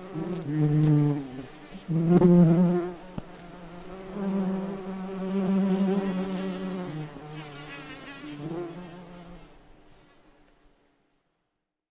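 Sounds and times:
beetle buzzing in flight: 0.0 - 9.4.

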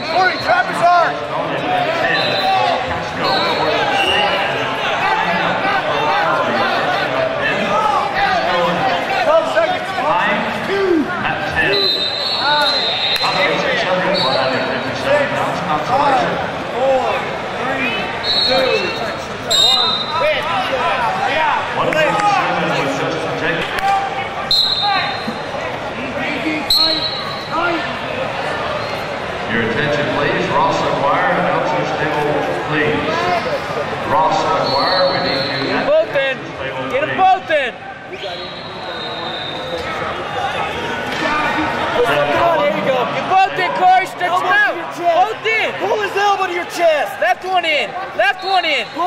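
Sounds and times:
echoing hubbub of voices: 0.0 - 49.0.

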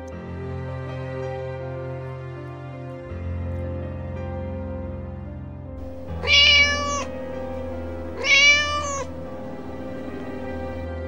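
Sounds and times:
soft background music: 0.0 - 11.0
kitten meowing: 5.8 - 10.9.

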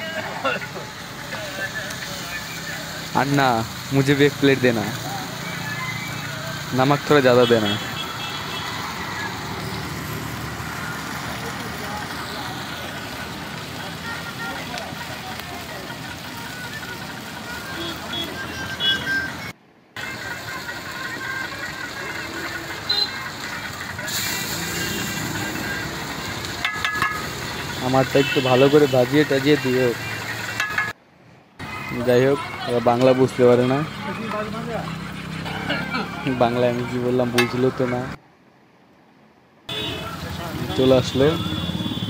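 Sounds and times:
fish sizzling on a griddle: 0.0 - 19.3, 20.0 - 31.0.

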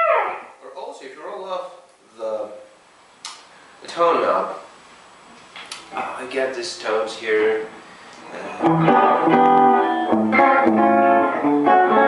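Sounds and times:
electric guitar chord: 8.5 - 12.0
guitar pick click: 8.6 - 10.5.

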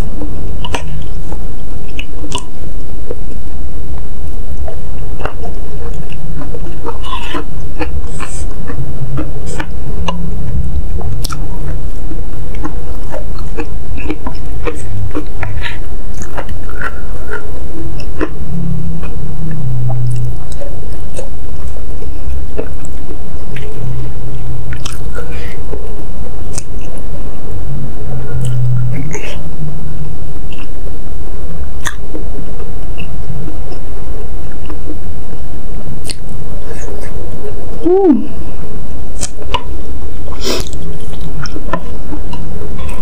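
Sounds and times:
chewing and wet mouth sounds: 0.0 - 3.2, 4.6 - 27.0, 31.8 - 32.2, 40.3 - 43.0.

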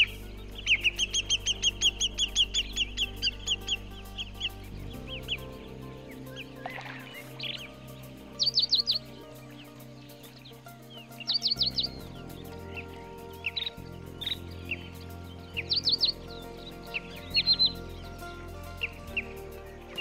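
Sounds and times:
bird chirping: 0.0 - 20.0
slow low chords music: 0.0 - 20.0.

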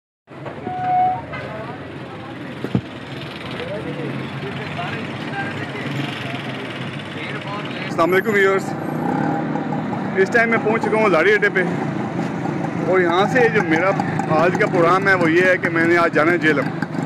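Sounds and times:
hubbub of voices: 0.3 - 16.6
vehicle engines: 0.3 - 17.0
short horn toot: 0.6 - 1.3.

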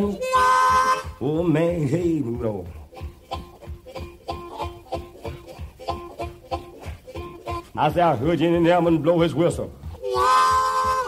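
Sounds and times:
plucked blues guitar: 0.0 - 7.8, 9.9 - 11.0
person singing: 0.0 - 8.4, 9.9 - 11.0.

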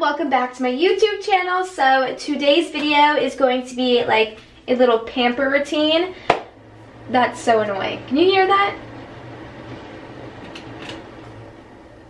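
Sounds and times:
appliance humming and rushing: 4.5 - 12.0.

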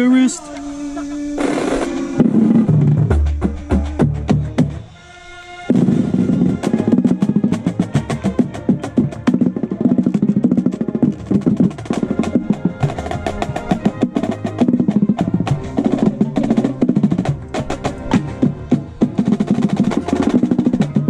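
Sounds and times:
brass chords: 0.0 - 21.0
marching bass drums: 1.4 - 5.0, 5.7 - 21.0
snare drum rolls: 5.7 - 21.0.

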